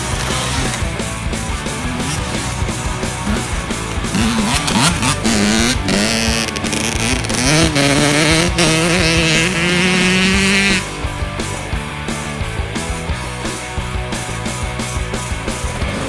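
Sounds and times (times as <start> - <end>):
dirt bike engine revving: 0.0 - 16.0.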